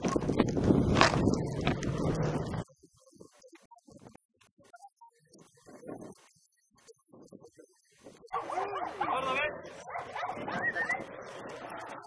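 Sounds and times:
people's voices: 0:07.0 - 0:12.0
dogs barking and yelping: 0:08.3 - 0:12.0.

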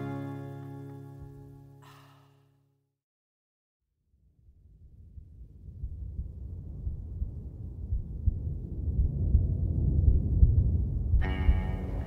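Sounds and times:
deep rumble: 0:04.3 - 0:12.0.

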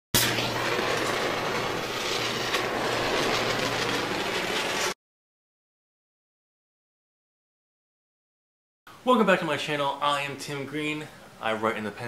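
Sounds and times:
fire crackling and rushing: 0:00.2 - 0:05.0
sharp crack: 0:00.2 - 0:05.0.

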